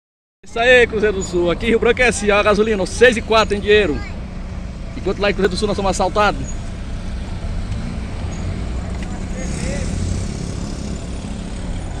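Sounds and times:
vehicle engines rumbling: 0.4s - 12.0s
motorcycle riding past: 6.8s - 12.0s.

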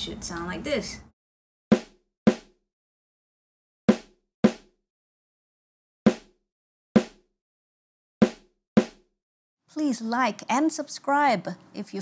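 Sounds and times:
snare drum hits: 1.7s - 2.5s, 3.9s - 4.7s, 6.1s - 6.4s, 7.0s - 7.2s, 8.2s - 9.0s.

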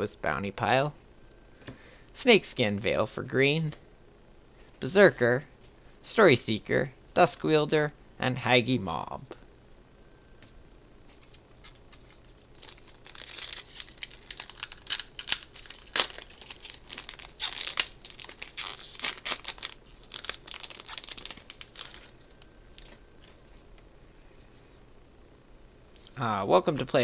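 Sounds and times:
foil wrapper tearing: 11.2s - 23.0s.

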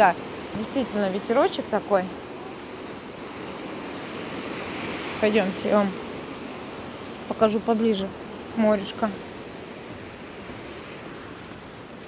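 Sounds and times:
surf washing on pebble beach: 0.0s - 12.0s
wind blowing across microphone: 0.0s - 12.0s.

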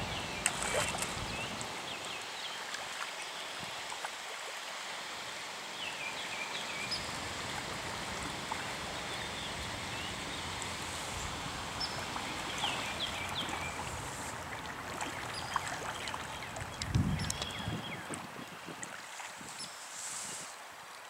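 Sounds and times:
fish splashing in water: 0.1s - 1.9s, 7.0s - 19.4s.

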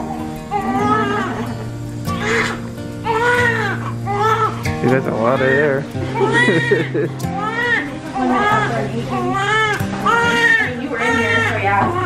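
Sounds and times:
baby crying: 0.0s - 12.0s
music with long held notes: 0.0s - 12.0s.

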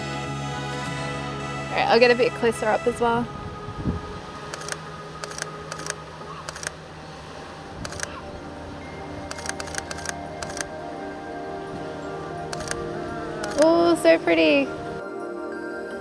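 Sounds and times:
soft background music: 0.0s - 16.0s
camera shutter clicks: 4.5s - 6.8s, 7.8s - 8.1s, 9.3s - 10.7s, 12.6s - 12.8s, 13.4s - 13.7s.

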